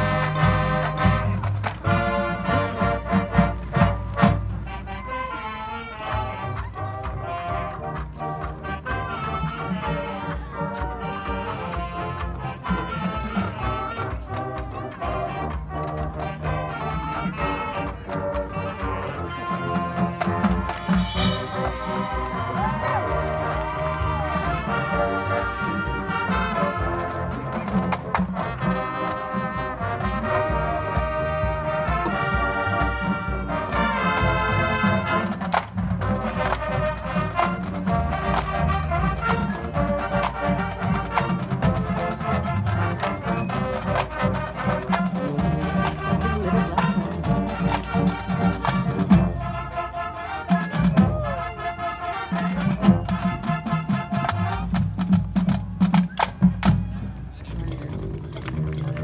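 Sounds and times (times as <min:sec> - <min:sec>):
brass sustained chords: 0:00.0 - 0:27.3, 0:28.5 - 0:35.4
marching percussion: 0:00.0 - 0:59.0.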